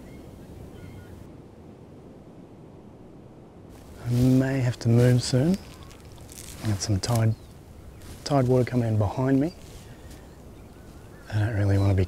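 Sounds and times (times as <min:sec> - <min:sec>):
faint high bird calls: 0:00.0 - 0:01.3, 0:05.0 - 0:12.0
wind on microphone: 0:00.0 - 0:12.0.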